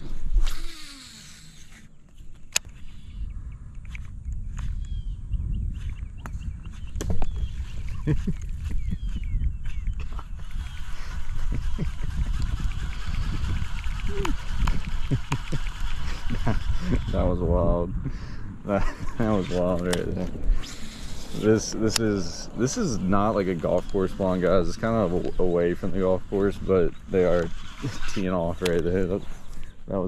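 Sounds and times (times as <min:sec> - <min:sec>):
birds chirping faintly: 0:00.8 - 0:30.0
wind buffeting microphone: 0:02.2 - 0:30.0
scattered clicks: 0:08.1 - 0:17.1, 0:19.5 - 0:29.9.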